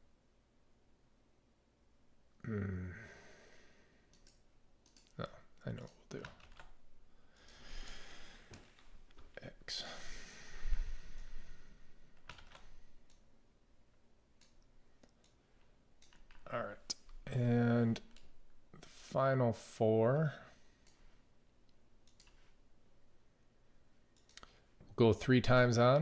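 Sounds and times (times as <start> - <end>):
keyboard and mouse clicks: 4.1 - 6.8, 12.2 - 13.3, 14.4 - 15.4, 16.0 - 17.2, 22.0 - 22.5, 24.1 - 24.6.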